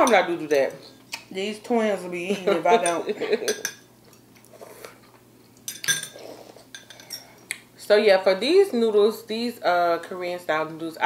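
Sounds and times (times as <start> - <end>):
metal utensil clinking on ceramic bowl: 2.8 - 3.8, 5.7 - 7.3.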